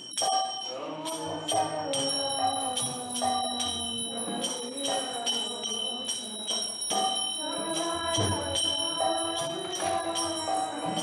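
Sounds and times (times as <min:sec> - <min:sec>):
ringing metal bell: 0:00.0 - 0:11.0
voices singing a chant: 0:00.0 - 0:11.0.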